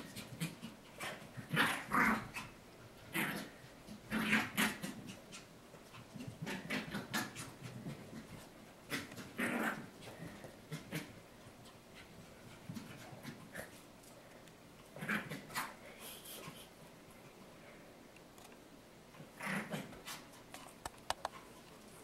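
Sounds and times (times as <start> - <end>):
puppy making playful noises: 0.1 - 10.1.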